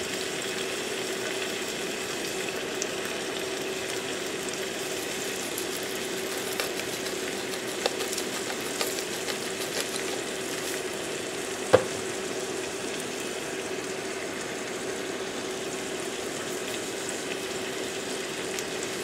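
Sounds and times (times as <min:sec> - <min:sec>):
greens sizzling in a frying pan: 0:00.0 - 0:19.0.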